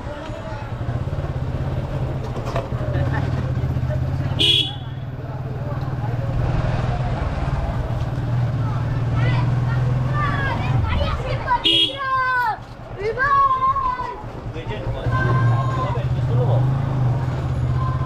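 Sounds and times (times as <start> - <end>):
faint voices of people: 0.0 - 1.6, 2.2 - 18.0
motorcycle engine running: 0.0 - 11.8.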